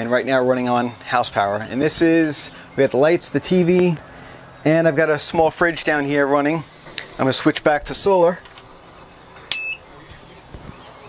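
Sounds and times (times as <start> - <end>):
short electronic beep: 9.5 - 9.8.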